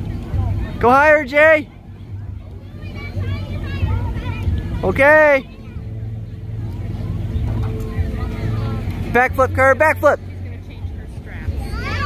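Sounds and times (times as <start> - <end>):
small engine droning: 0.0 - 12.0.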